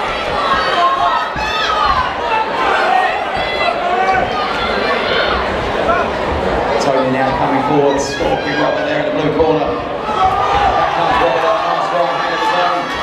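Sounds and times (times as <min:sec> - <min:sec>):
crowd chattering and shouting: 0:00.0 - 0:13.0.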